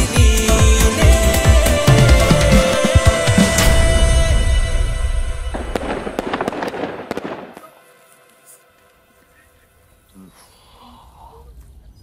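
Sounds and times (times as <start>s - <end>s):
music: 0.0s - 9.4s
firecracker pops crackling: 5.6s - 7.8s.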